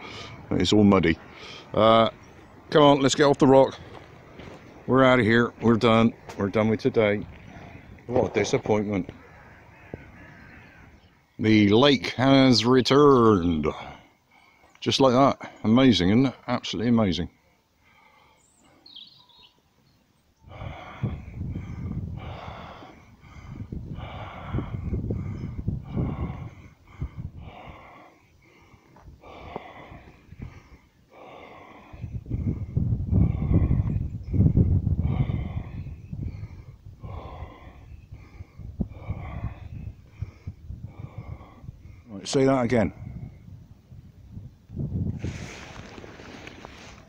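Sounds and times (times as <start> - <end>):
heavy breathing: 17.4 - 19.0, 20.4 - 42.2.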